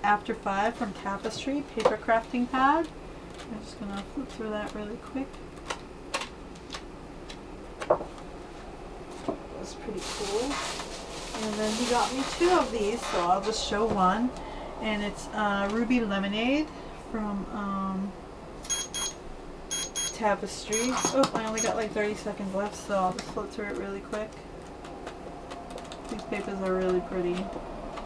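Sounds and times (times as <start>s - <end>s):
electronic beeper short beeps: 18.7s - 21.7s.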